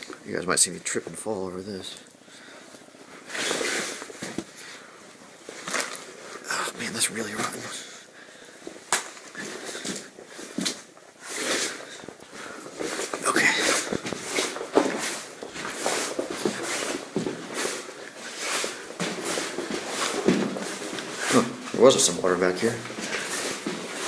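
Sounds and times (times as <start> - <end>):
footsteps crunching on gravel: 11.8 - 24.0.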